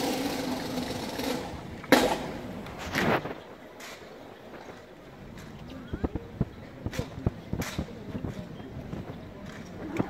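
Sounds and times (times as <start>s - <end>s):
open-air arena ambience: 0.0s - 10.0s.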